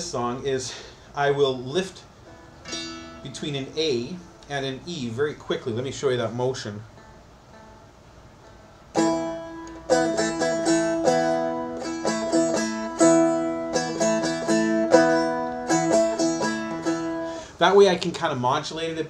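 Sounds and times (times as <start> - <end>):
four-string guitar strummed: 2.2 - 4.3, 6.8 - 18.2.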